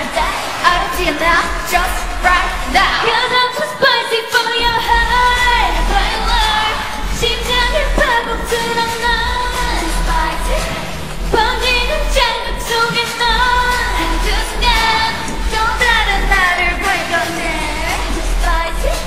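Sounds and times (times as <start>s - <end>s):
low bass rumble: 0.0s - 3.5s, 4.6s - 19.0s
group of women singing: 0.0s - 19.0s.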